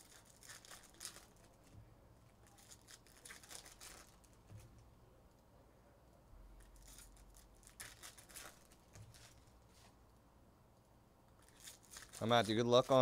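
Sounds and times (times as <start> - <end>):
foil wrapper crinkling: 0.0 - 1.6, 2.5 - 4.3, 6.8 - 9.4, 11.4 - 13.0.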